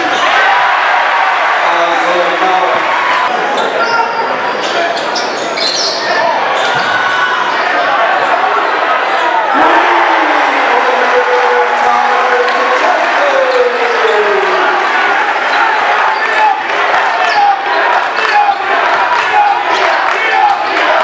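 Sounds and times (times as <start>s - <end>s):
crowd hubbub: 0.0s - 21.0s.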